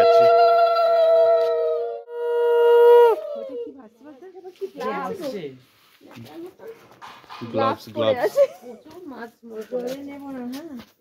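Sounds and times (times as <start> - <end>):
people talking: 7.6 - 10.9.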